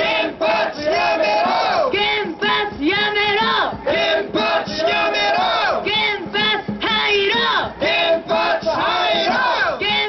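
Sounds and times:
crowd chanting: 0:00.0 - 0:10.0
person chanting slogans through pa: 0:00.0 - 0:10.0.

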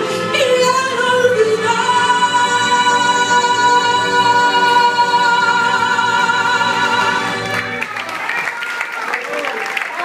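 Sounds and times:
woman singing into microphone: 0:00.0 - 0:07.4
musical accompaniment: 0:00.0 - 0:10.0.

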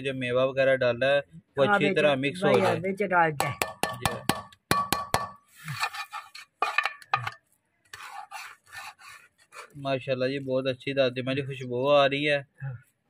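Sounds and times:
metal spatula scraping metal pan: 0:05.4 - 0:09.8.

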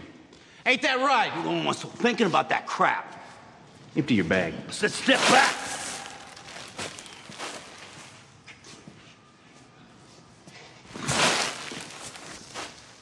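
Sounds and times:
clothing rustling scuff: 0:05.1 - 0:09.0, 0:11.0 - 0:13.0.

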